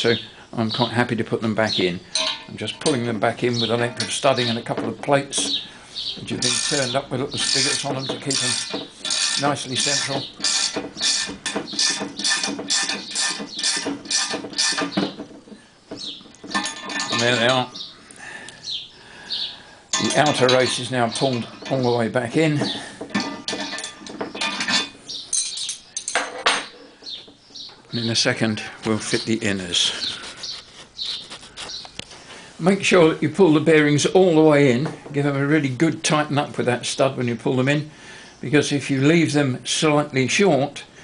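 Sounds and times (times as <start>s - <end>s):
small bird chirping: 5.3s - 15.2s, 15.8s - 22.0s, 23.5s - 26.1s, 26.7s - 28.1s, 29.1s - 32.2s
faint background hiss: 15.0s - 41.0s.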